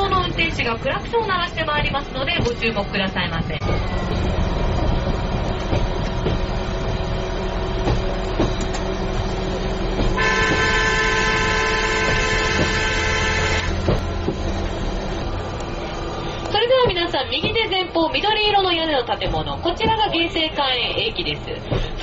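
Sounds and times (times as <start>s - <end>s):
vehicle running noise: 0.0s - 22.0s
long vehicle horn blast: 10.2s - 13.9s.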